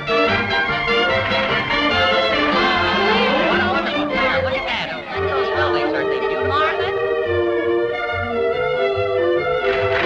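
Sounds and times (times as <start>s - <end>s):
orchestral cartoon music: 0.0s - 10.0s
violin-led melody: 0.0s - 10.0s.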